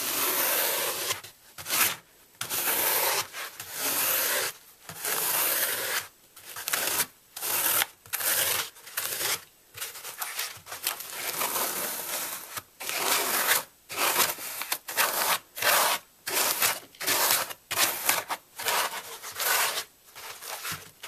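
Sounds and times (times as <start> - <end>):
fork scraping floral foam: 0.0 - 21.0.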